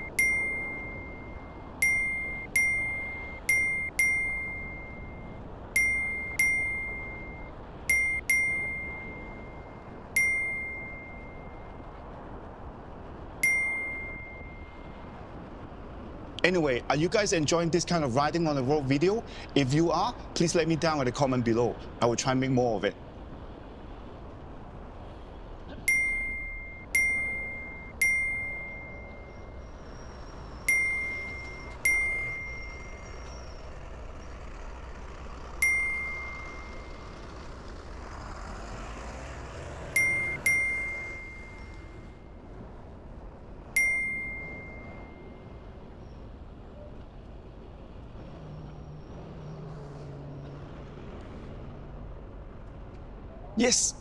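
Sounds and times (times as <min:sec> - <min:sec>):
bright ding: 0:00.0 - 0:11.7, 0:13.4 - 0:14.8, 0:25.9 - 0:29.4, 0:30.7 - 0:33.0, 0:35.6 - 0:37.0, 0:40.0 - 0:42.0, 0:43.8 - 0:45.4
street traffic noise: 0:00.0 - 0:54.0.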